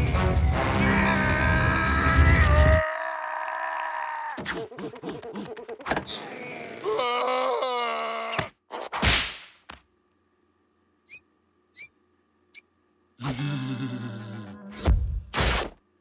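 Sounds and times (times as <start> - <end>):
strained wordless vocalising: 13.2 - 14.8.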